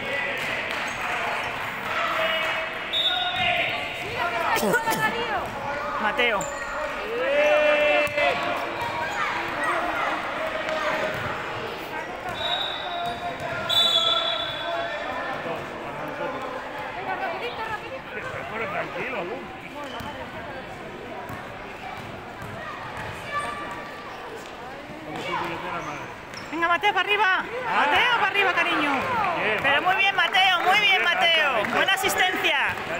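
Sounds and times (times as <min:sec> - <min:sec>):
voices of children and spectators: 0:00.0 - 0:32.9
referee whistle blasts: 0:02.9 - 0:03.4, 0:12.3 - 0:14.6
basketball bouncing on court: 0:21.3 - 0:23.8.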